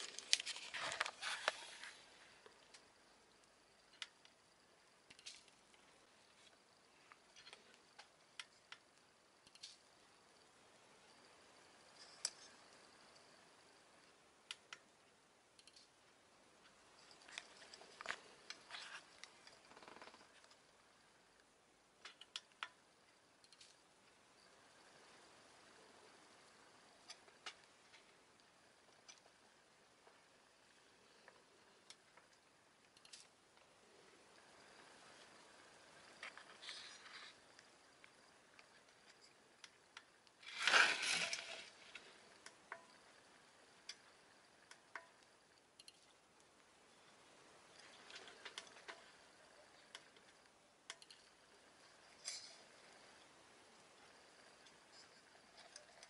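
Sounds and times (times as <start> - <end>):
faint sharp clicks and crackles: 0.0 - 56.0.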